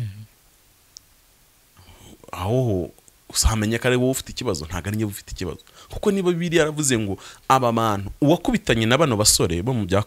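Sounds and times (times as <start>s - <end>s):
faint click: 0.9s - 1.1s
man speaking: 1.9s - 10.0s.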